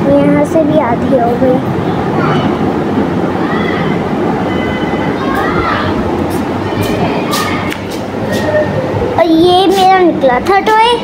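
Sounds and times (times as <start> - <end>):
faint voices: 0.0 - 11.0
steady rumbling noise: 0.0 - 11.0.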